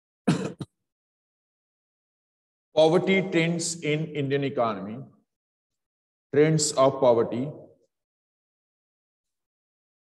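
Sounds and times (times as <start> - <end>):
man clearing his throat: 0.2 - 0.8.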